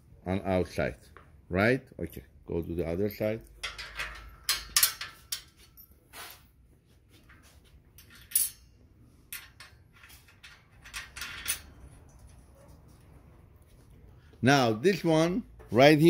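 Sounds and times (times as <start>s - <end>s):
metal nuts and bolts clinking: 2.1s - 6.4s, 7.3s - 12.5s.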